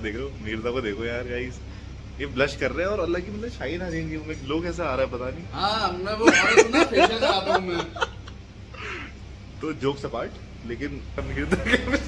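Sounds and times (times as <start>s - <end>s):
people talking: 0.0s - 1.6s, 2.2s - 8.3s, 9.6s - 12.0s.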